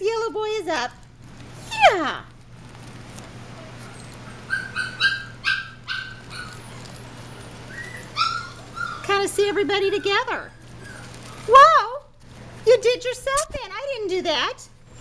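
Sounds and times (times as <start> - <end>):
puppies whining and yipping: 3.6 - 12.0.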